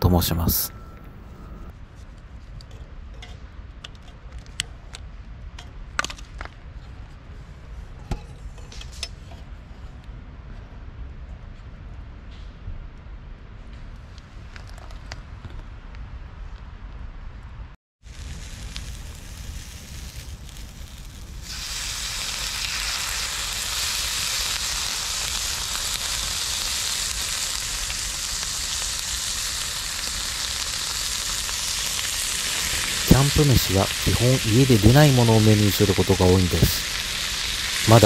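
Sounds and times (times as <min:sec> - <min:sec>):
food sizzling in a hot pan: 0:18.0 - 0:38.0
low background hiss: 0:31.0 - 0:38.0.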